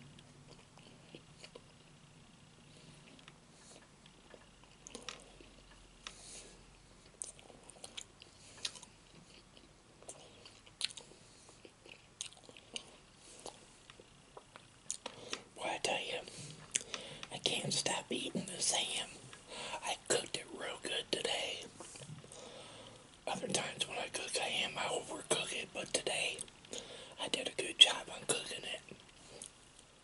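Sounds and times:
man whispering: 0:15.6 - 0:16.4, 0:17.3 - 0:21.8, 0:23.2 - 0:26.5, 0:27.1 - 0:29.0.

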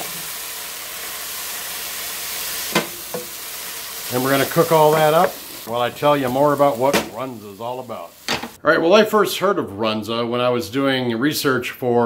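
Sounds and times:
meat sizzling in frying pan: 0:00.0 - 0:08.6.

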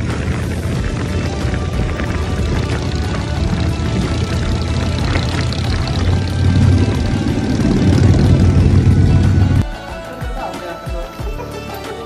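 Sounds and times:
motorcycle engine rumble: 0:00.0 - 0:09.6
rushing air: 0:00.0 - 0:09.6
background music: 0:00.0 - 0:12.0.

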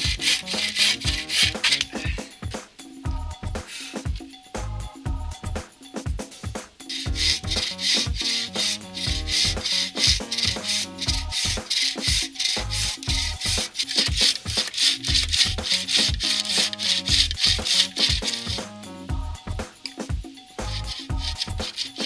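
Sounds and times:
bow saw cutting log: 0:00.0 - 0:02.1, 0:06.9 - 0:18.7, 0:20.7 - 0:22.0
background music with steady beat: 0:00.0 - 0:22.0.

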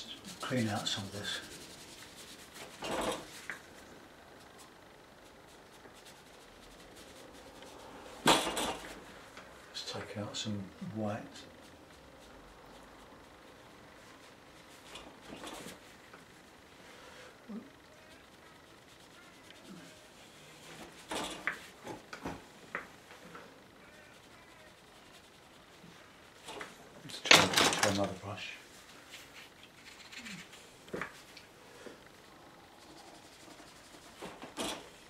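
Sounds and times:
brush scrubbing paper: 0:00.0 - 0:03.4, 0:18.1 - 0:21.1, 0:23.8 - 0:26.4, 0:33.1 - 0:34.2.

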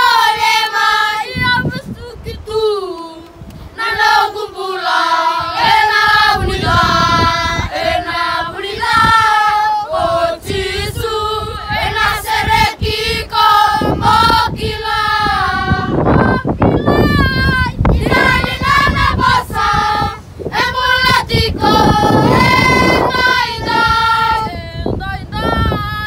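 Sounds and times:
children singing together: 0:03.8 - 0:24.6.

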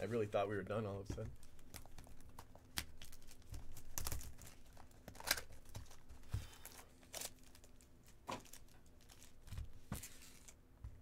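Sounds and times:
plastic shrink wrap crinkling: 0:01.4 - 0:10.6.

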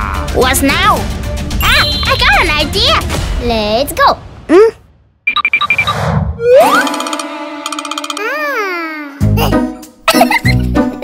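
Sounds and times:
comedic background music: 0:00.0 - 0:03.6, 0:06.4 - 0:11.0
cartoon sound effects: 0:01.6 - 0:02.6, 0:06.4 - 0:09.2.

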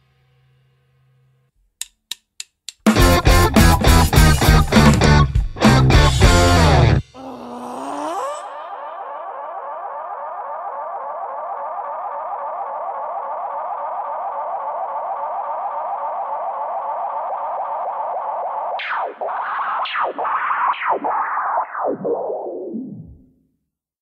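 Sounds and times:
synthesizer warble with echo: 0:08.4 - 0:23.2
falling synth sweep: 0:08.4 - 0:23.3.

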